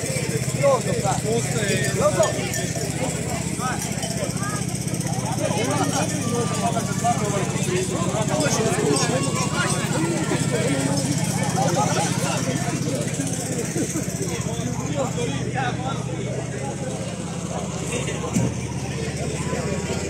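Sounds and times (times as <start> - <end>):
people talking indistinctly: 0.0 - 20.0
small engine running: 0.0 - 20.0.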